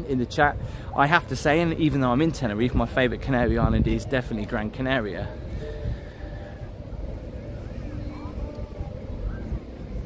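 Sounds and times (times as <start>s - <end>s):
faint distant voices: 0.0s - 10.0s
wind noise on microphone: 2.7s - 10.0s.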